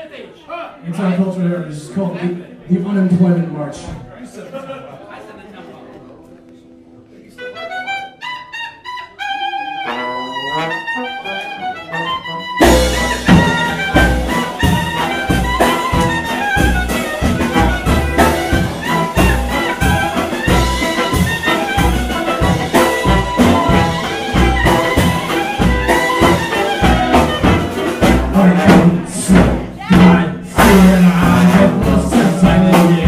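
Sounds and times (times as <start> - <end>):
lone melody instrument: 7.1 - 33.0
klezmer band playing a march: 7.4 - 33.0
steady bass drum beat: 12.6 - 33.0.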